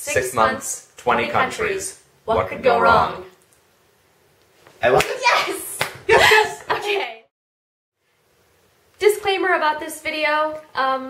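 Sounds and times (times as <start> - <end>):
hand claps: 4.9 - 5.2, 5.8 - 6.1.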